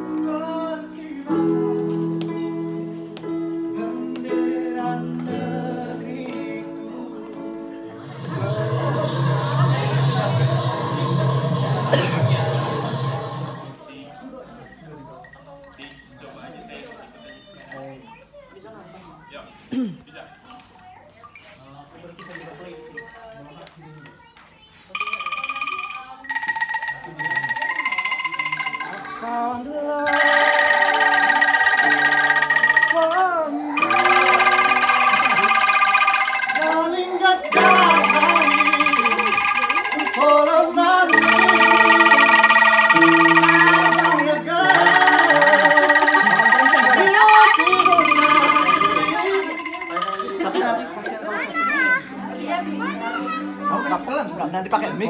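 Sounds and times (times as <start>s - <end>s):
keyboard bass notes: 7.9s - 13.8s, 31.1s - 50.6s
bamboo rattles shaken in chords: 25.0s - 29.2s, 30.1s - 51.1s.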